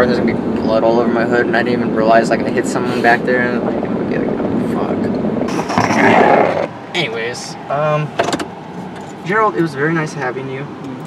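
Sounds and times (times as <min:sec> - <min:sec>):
camera rubbing against microphone: 0:05.5 - 0:06.7.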